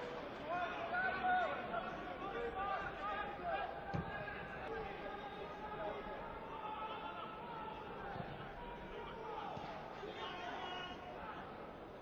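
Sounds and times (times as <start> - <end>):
open-air stadium background: 0.0 - 12.0.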